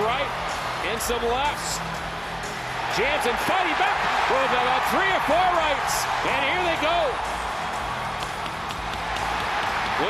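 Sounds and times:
crowd cheering: 0.0s - 10.0s
people clapping: 3.0s - 10.0s.

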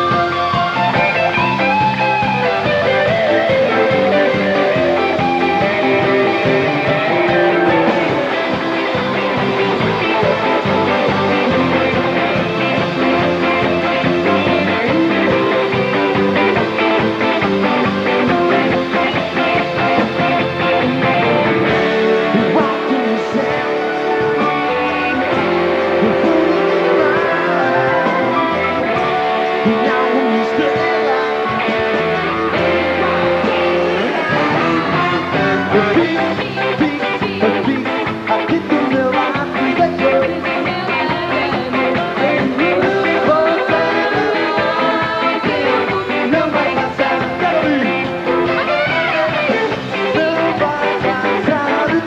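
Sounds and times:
guitar line: 0.0s - 52.0s
live rock band playing: 0.0s - 52.0s
steady drum beat: 0.0s - 52.0s.

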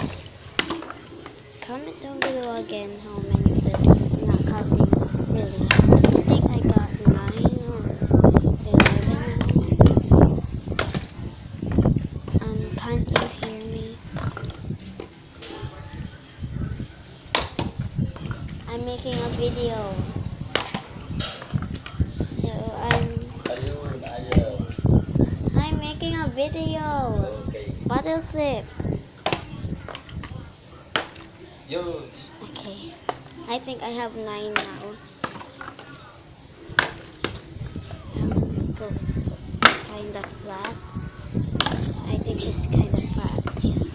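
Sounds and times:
faint voices: 0.0s - 43.9s
plastic bottle hitting concrete: 39.6s - 40.0s.

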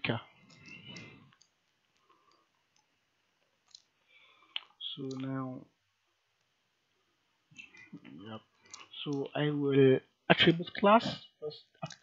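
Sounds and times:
computer mouse clicks: 0.4s - 2.9s, 3.6s - 3.9s, 4.6s - 5.3s.

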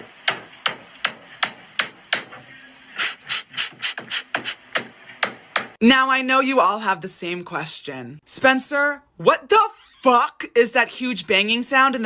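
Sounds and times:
hammer banging on wall: 0.0s - 2.4s, 4.0s - 5.8s.

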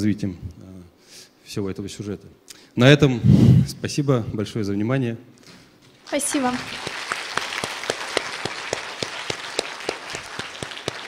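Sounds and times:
audience applauding: 6.0s - 11.0s.

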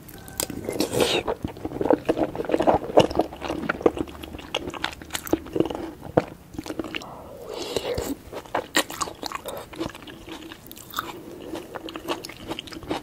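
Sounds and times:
wet chewing and lip smacking: 0.1s - 13.0s.

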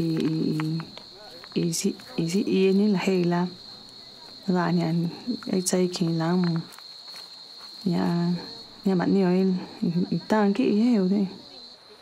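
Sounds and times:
woman speaking: 0.0s - 6.7s, 7.8s - 11.6s.

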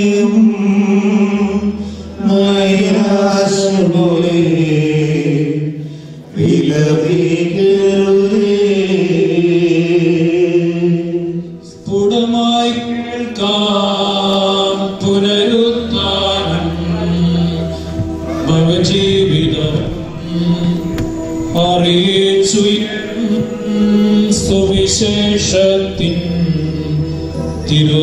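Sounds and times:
person chanting a hymn: 0.0s - 28.0s.

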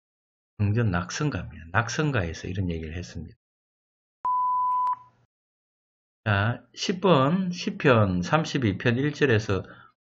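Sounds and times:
high electronic beep: 4.3s - 5.2s.

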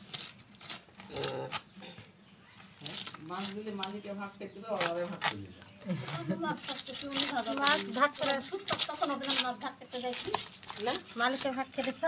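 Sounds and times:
knife scraping fish scales: 0.0s - 1.0s, 6.0s - 12.0s.

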